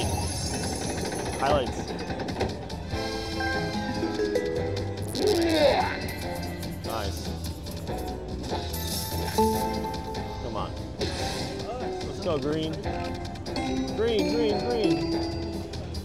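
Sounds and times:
slot machine bonus music: 0.0s - 16.0s
chiming notes: 13.6s - 16.0s.

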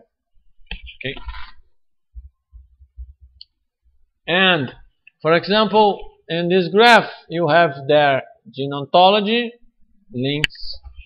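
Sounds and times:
man speaking: 4.3s - 10.8s.

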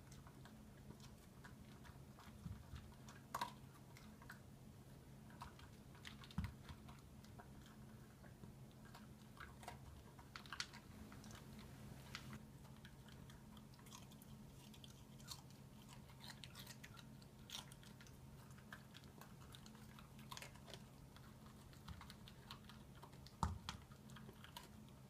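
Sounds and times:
dog chewing and crunching: 0.0s - 25.0s
low steady hum: 0.0s - 25.0s.

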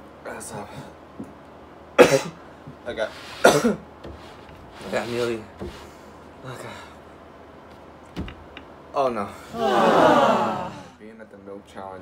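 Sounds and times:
man coughing hard: 2.0s - 2.4s, 3.4s - 3.8s.

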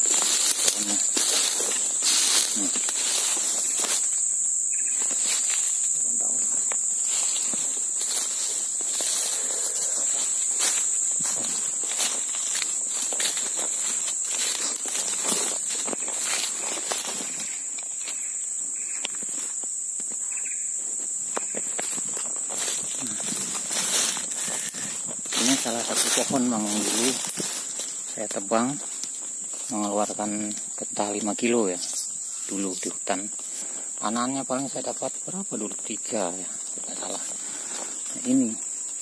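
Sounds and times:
footsteps crunching dry leaves: 0.0s - 33.9s, 35.9s - 39.0s
high-pitched insect drone: 0.0s - 39.0s.

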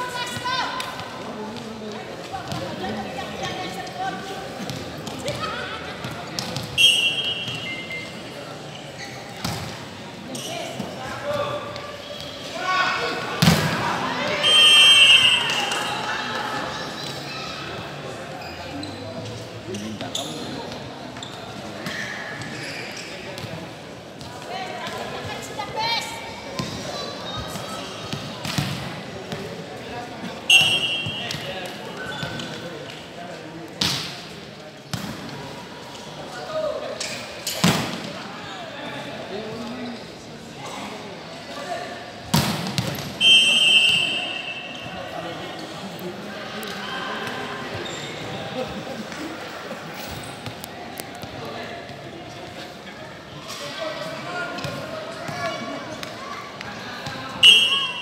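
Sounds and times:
murmur of voices: 0.0s - 58.0s
referee's whistle: 6.8s - 8.2s, 14.4s - 15.9s, 30.5s - 31.4s, 43.2s - 45.0s, 57.4s - 58.0s.

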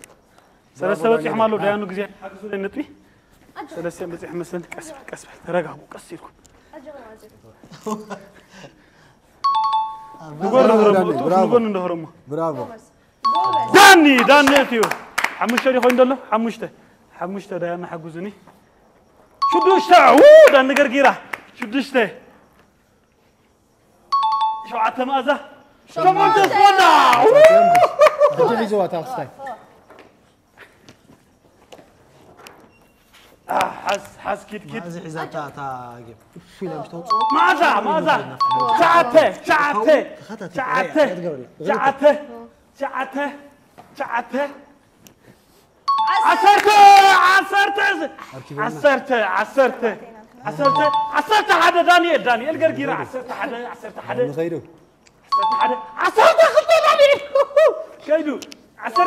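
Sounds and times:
two-tone ding-dong chime: 9.4s - 10.3s, 13.3s - 14.0s, 19.4s - 20.0s, 24.2s - 24.8s, 37.1s - 39.2s, 45.9s - 46.5s, 50.6s - 51.5s, 55.3s - 56.0s
excited voices: 19.5s - 21.1s, 26.0s - 29.3s, 46.1s - 48.9s, 55.7s - 58.0s.

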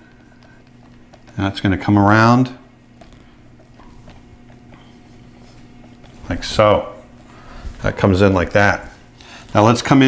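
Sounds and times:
stylus scratching on tablet: 0.0s - 1.4s, 3.1s - 9.0s
low electrical hum: 0.0s - 10.0s.

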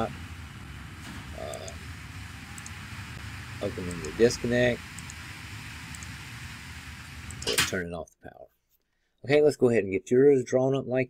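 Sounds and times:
steady hiss: 0.0s - 7.8s
low electrical hum: 0.0s - 7.9s
faint small clicks: 2.6s - 2.8s.

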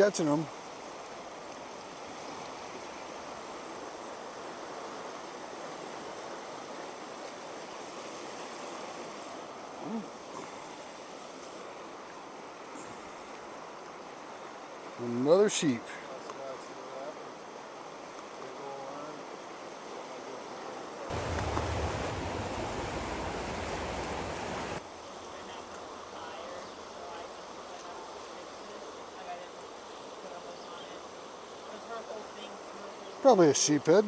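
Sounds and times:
river water rushing: 0.0s - 15.0s, 20.8s - 26.1s
deeper rush of noise: 21.1s - 24.8s.

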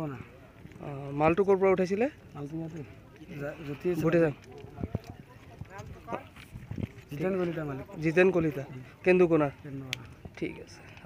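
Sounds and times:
man talking: 0.0s - 6.3s, 7.1s - 11.0s.

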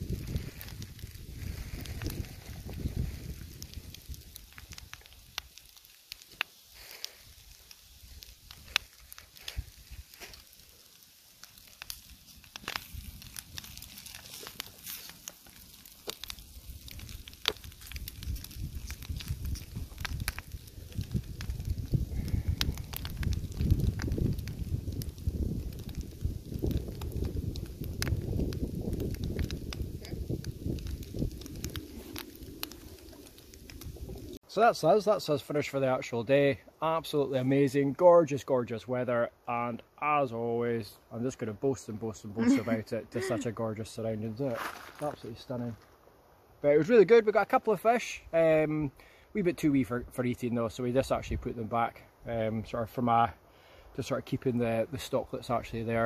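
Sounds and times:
wind rumble on microphone: 0.0s - 5.4s, 16.1s - 34.4s
food sizzling in a pan: 0.0s - 26.7s, 42.4s - 43.5s
campfire crackles and pops: 0.0s - 56.0s.

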